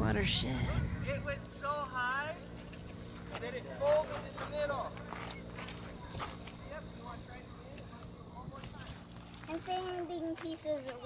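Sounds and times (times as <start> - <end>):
low hum: 0.0 - 9.7
distant people talking: 0.0 - 11.0.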